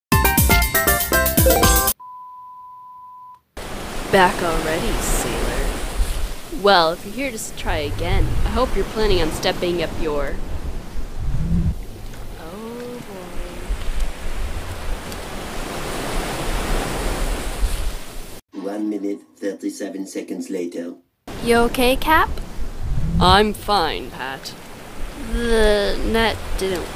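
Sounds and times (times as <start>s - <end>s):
ocean waves rushing: 3.6s - 18.4s, 21.3s - 26.9s.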